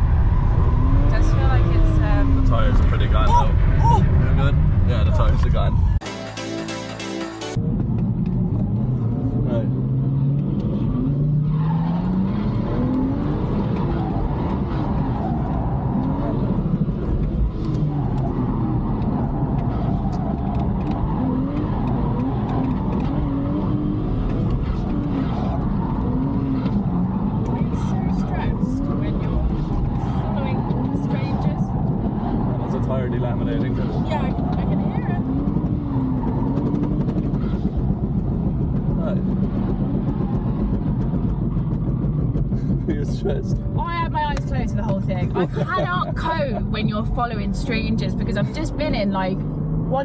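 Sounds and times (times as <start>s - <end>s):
car engine revving: 0.0s - 6.0s, 7.5s - 50.0s
tyre and road noise: 0.0s - 6.0s, 7.3s - 50.0s.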